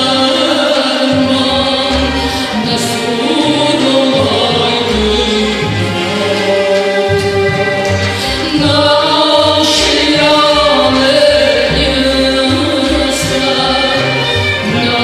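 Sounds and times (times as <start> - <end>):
bass line: 0.0 - 15.0
man and woman singing: 0.0 - 15.0
string orchestra: 0.0 - 15.0.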